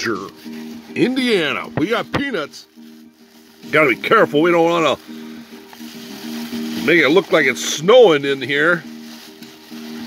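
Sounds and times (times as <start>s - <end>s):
background music held notes: 0.0s - 10.0s
plastic bag crinkling: 0.0s - 10.0s.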